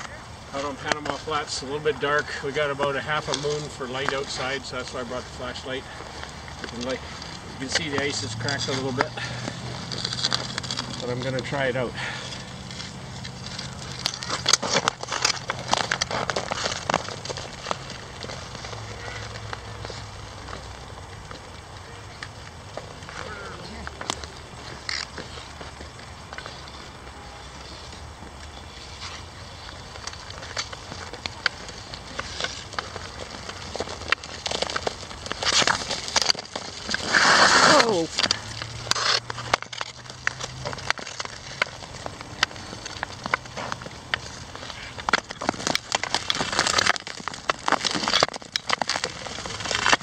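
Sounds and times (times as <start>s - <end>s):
skate blades scraping ice: 0.0s - 50.0s.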